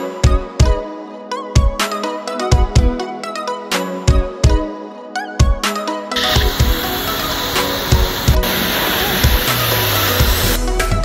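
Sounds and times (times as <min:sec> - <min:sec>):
background music with steady beat: 0:00.0 - 0:11.0
pressure washer jet hissing: 0:06.2 - 0:10.6.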